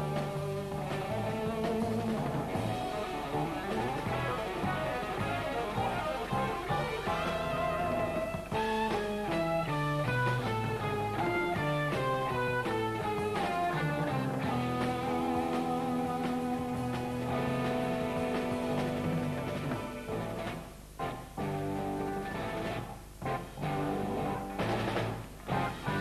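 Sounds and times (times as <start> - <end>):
bass guitar: 0.0 - 26.0
drums: 0.0 - 26.0
electric guitar: 0.0 - 26.0
jazz-rock band playing: 0.0 - 26.0.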